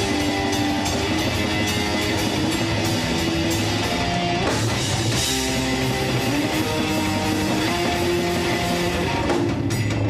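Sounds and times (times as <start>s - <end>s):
metal band playing live: 0.0s - 10.0s.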